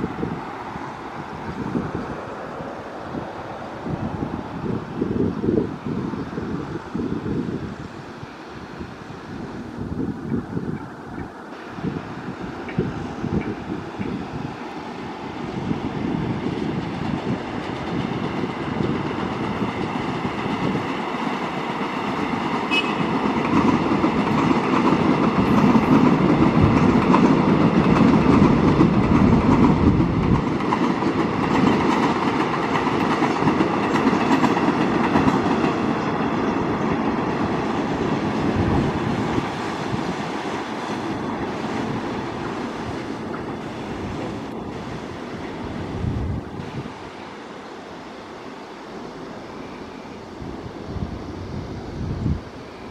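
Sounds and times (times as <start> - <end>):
electric train running past: 0.0 - 52.9.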